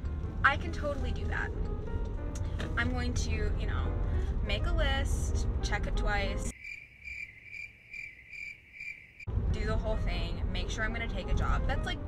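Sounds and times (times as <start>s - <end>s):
crickets chirping: 6.5s - 9.3s.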